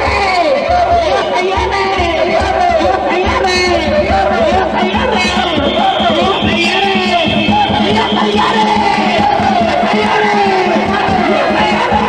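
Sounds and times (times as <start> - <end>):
men chanting and shouting: 0.0 - 12.0
taiko drum beaten rapidly: 0.0 - 12.0.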